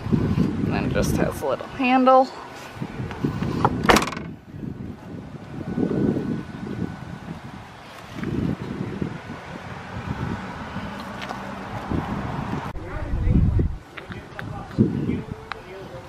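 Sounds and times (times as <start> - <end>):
wind rumbling on microphone: 0.0 - 1.8, 2.6 - 16.0
car liftgate slamming: 3.8 - 4.3.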